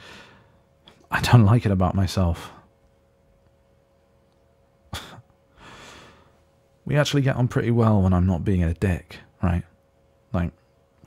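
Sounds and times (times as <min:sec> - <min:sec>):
man breathing: 0:00.0 - 0:00.7, 0:05.0 - 0:06.5.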